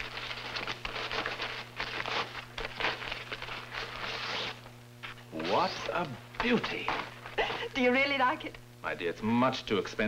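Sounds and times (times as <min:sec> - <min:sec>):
wrapping paper rustling: 0:00.0 - 0:06.0.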